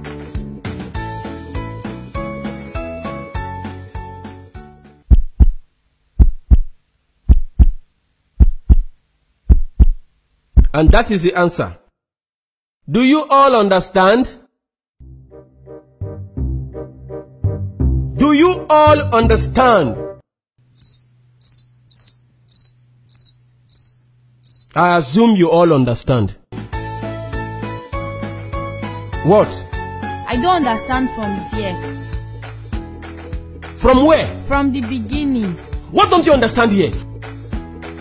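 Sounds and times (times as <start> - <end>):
heartbeat thumps: 5.1 - 5.6, 6.2 - 7.8, 8.4 - 10.0, 10.6 - 11.1
cricket chirping: 20.7 - 24.8.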